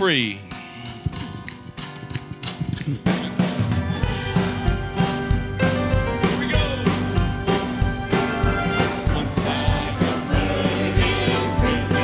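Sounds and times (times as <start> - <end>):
drum kit steady beat: 0.0 - 12.0
gospel band playing: 0.0 - 12.0.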